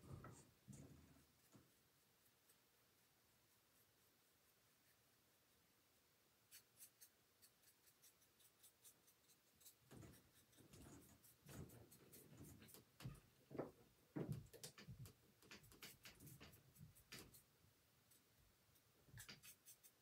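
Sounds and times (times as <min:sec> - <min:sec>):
paintbrush scratching on wood: 0:06.5 - 0:13.2, 0:19.2 - 0:20.0.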